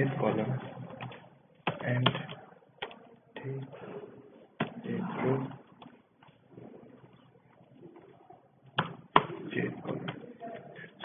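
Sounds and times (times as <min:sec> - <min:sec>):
faint keyboard typing: 0:00.5 - 0:03.8, 0:05.5 - 0:08.8.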